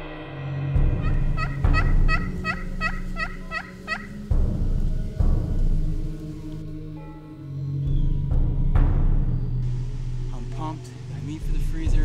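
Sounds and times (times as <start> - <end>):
music with drum and gong: 0.0 - 6.6
turkey yelping: 1.0 - 4.2.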